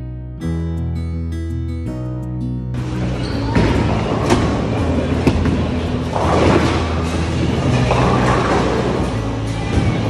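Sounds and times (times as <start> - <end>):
guitar music: 0.0 - 6.1
bowling ball thudding and rolling: 3.4 - 10.0.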